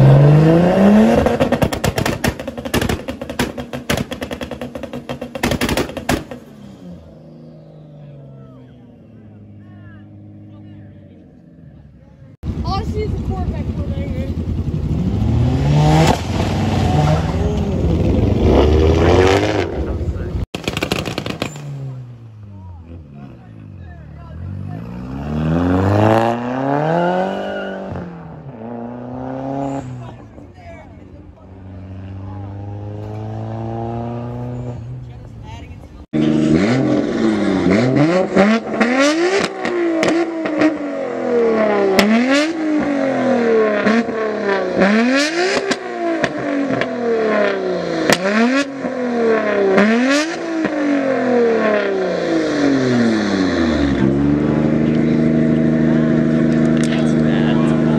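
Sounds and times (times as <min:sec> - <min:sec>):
car engine revving and pulling away: 0:00.0 - 0:57.9
exhaust pops and bangs: 0:01.1 - 0:06.5, 0:20.5 - 0:21.9.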